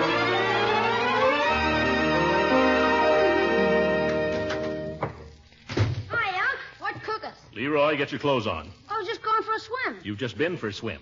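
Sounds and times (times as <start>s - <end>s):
music bridge: 0.0s - 5.0s
man speaking: 10.0s - 11.0s.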